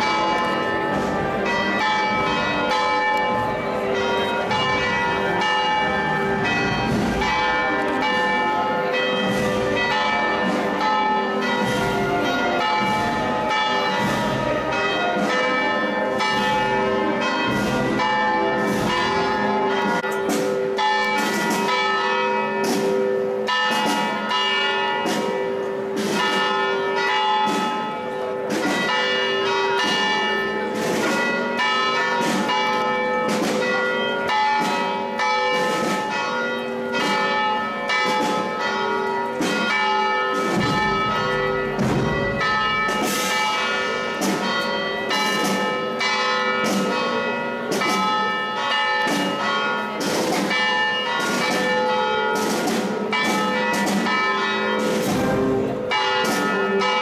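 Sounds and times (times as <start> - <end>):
church bells pealing: 0.0 - 57.0.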